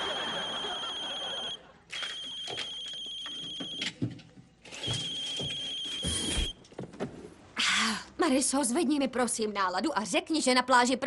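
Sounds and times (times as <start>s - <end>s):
electronic phone ringtone: 0.0s - 3.8s, 4.8s - 6.3s.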